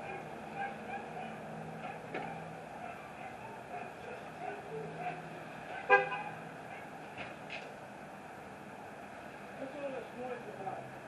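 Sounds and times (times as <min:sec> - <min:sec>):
car horn toot: 0:05.9 - 0:06.3.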